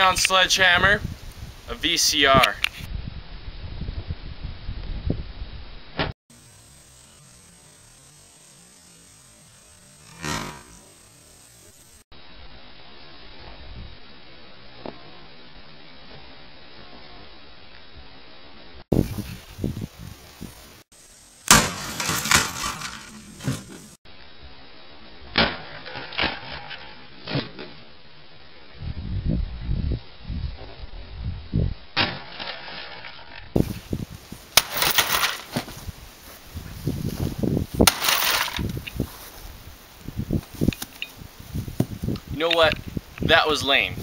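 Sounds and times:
plastic parts rattling: 34.7 - 35.5.

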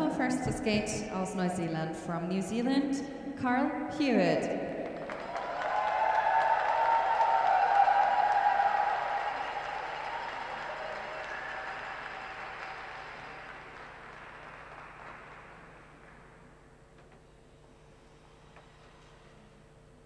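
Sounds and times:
audience applauding: 4.9 - 16.2.

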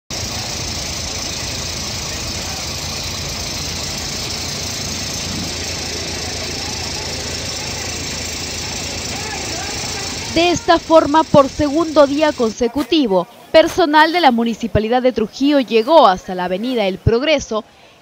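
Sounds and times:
diesel engine running: 0.1 - 17.6
people talking: 1.1 - 17.8.

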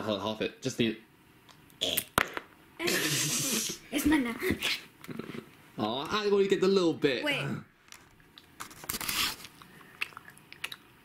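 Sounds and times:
mouth clicks: 9.9 - 10.9.

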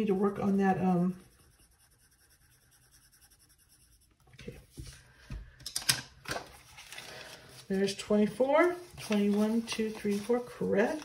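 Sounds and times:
pen scratching on paper: 0.0 - 4.6.

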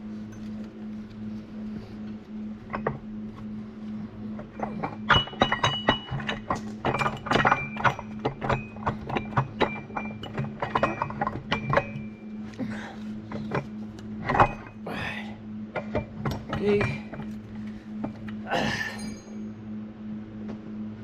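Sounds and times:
steady low hum: 0.0 - 21.0
metal gears clinking: 2.4 - 19.6.

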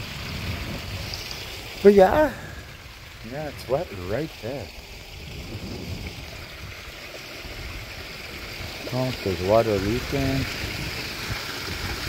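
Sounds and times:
pond waterfall rushing: 0.0 - 12.0.

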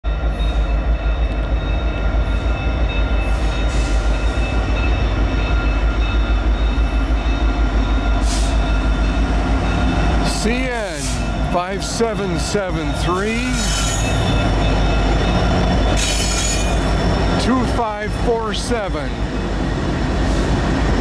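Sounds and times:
freight train low rumble: 0.0 - 21.0.

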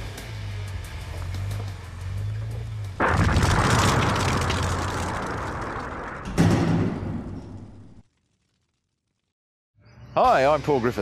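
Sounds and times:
low rumble: 2.3 - 8.0
explosion roar: 3.0 - 8.0.

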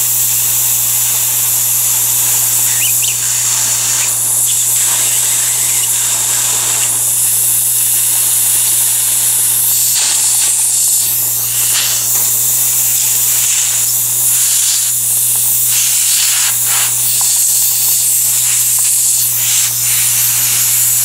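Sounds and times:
dental suction hissing: 0.0 - 21.0
water spray spurts: 0.0 - 21.0.

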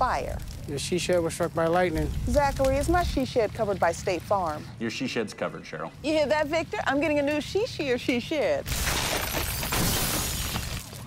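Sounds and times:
fire burning: 0.0 - 11.0
glass shattering: 8.6 - 11.0
structure crashing: 8.6 - 11.0.

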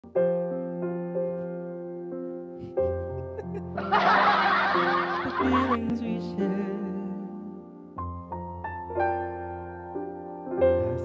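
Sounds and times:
soft piano backing track: 0.0 - 11.0
burst of laughter: 3.2 - 5.8.

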